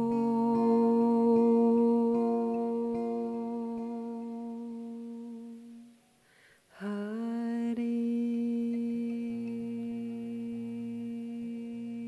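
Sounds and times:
person humming a long note: 0.0s - 6.0s, 6.8s - 12.0s
soft acoustic guitar notes: 0.0s - 12.0s.

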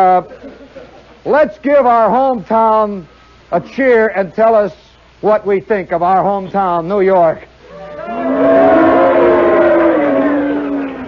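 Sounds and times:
audience booing: 7.7s - 11.0s.

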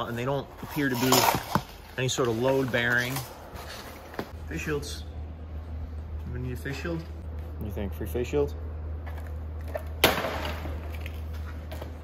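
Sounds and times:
steady low hum: 3.2s - 12.0s.

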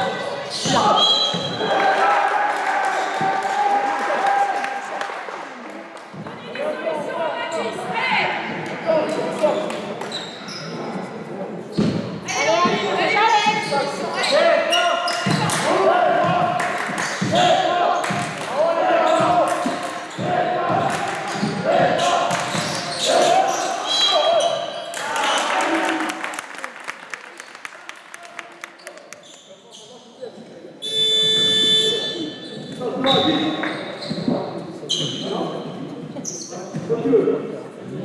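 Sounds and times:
basketball bouncing on court: 15.2s - 15.6s, 19.1s - 22.8s
buzzer: 30.8s - 32.2s.

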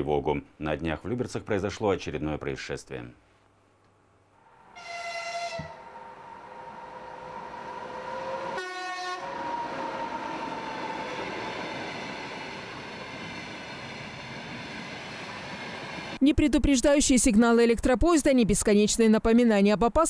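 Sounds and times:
passenger train passing: 4.4s - 17.0s
train horn: 4.6s - 10.6s.

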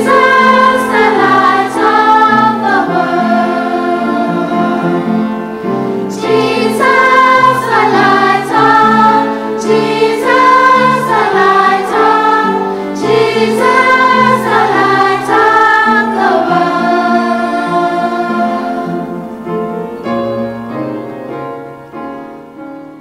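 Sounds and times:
choir singing a hymn: 0.0s - 20.2s.

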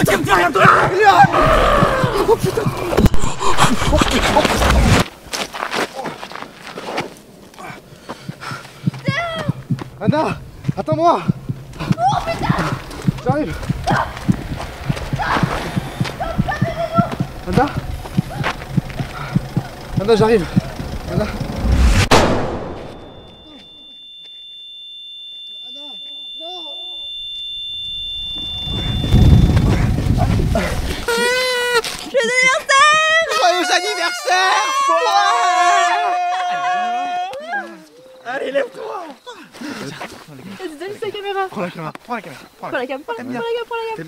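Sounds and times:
running footsteps: 0.0s - 21.8s, 28.4s - 33.8s, 37.3s - 42.1s
high-pitched ringing: 22.6s - 31.0s.

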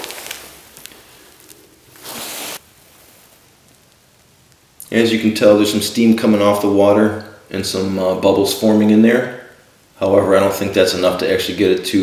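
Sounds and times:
handling rustle: 0.0s - 4.3s
faint hiss: 0.0s - 12.0s.

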